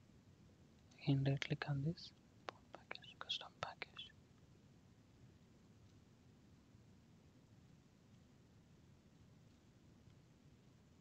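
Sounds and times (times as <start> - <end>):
low steady hiss: 0.0 - 11.0
breathy whisper-like sounds: 1.0 - 4.1.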